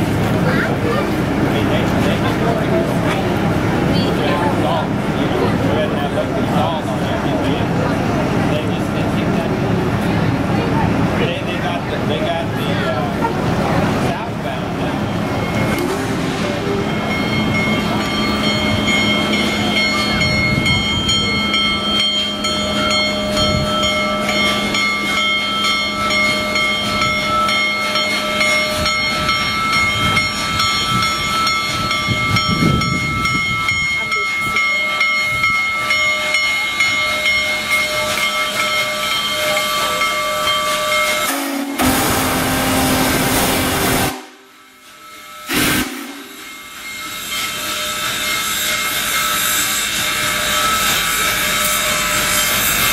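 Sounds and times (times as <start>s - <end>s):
train noise: 0.0s - 52.9s
steam whistle chord: 41.1s - 52.9s.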